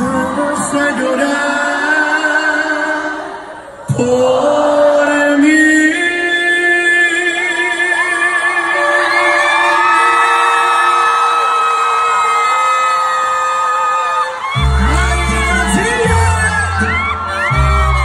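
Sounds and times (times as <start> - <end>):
audience whooping and screaming: 7.9 - 18.0
live band with heavy bass: 14.5 - 18.0.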